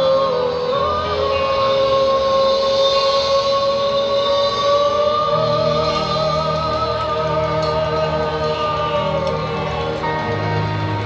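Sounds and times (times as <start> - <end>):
live band over pa: 0.0 - 11.0.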